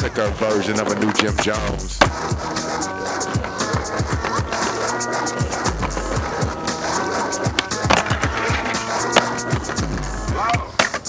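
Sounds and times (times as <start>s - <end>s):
hip-hop beat: 0.0s - 11.0s
skateboard clacks: 0.0s - 11.0s
skateboard wheels rolling on paving: 0.0s - 11.0s.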